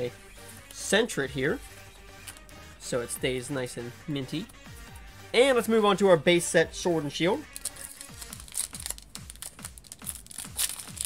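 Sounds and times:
music with thumping bass beat: 0.0s - 5.8s, 6.8s - 11.0s
foil wrapper crinkling: 7.5s - 11.0s.

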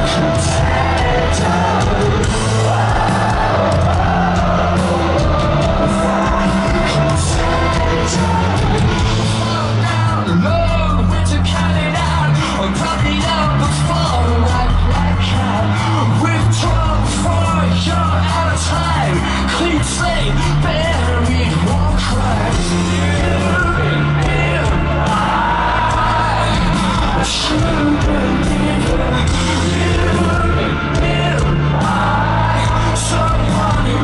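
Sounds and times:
drums: 0.0s - 34.0s
electric bass line: 0.0s - 34.0s
person singing: 0.0s - 34.0s.

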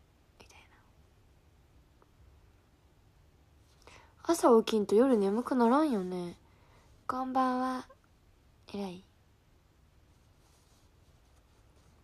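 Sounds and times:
low room hum: 0.0s - 12.0s
faint short breath: 6.5s - 7.0s.

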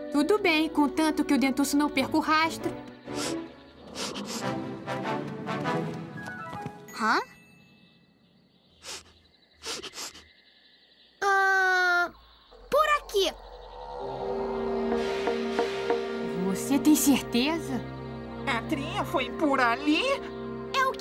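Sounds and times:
cartoon background music: 0.0s - 7.3s, 14.3s - 21.0s
short breathy sounds: 8.8s - 10.3s.

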